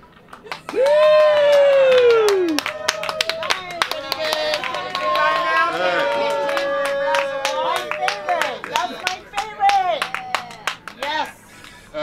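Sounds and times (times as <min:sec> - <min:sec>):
audience clapping: 0:00.0 - 0:11.8
voices calling out: 0:02.3 - 0:12.0.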